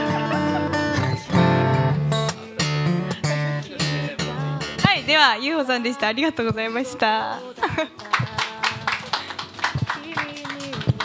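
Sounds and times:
quiet music: 0:00.0 - 0:11.0
audience clapping: 0:07.9 - 0:11.0.

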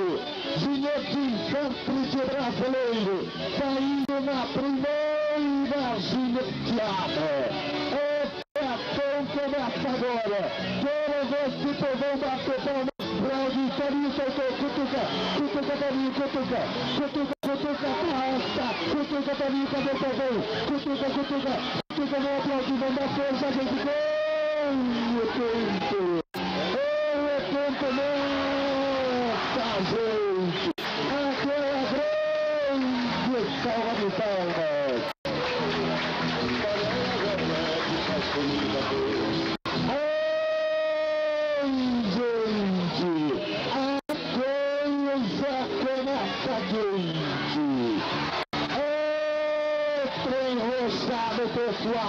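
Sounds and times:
man talking: 0:00.0 - 0:35.1.

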